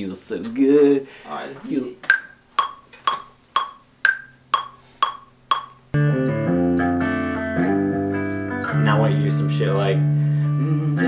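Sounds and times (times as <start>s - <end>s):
metronome clicks: 2.0s - 6.0s
electric guitar: 6.0s - 11.0s.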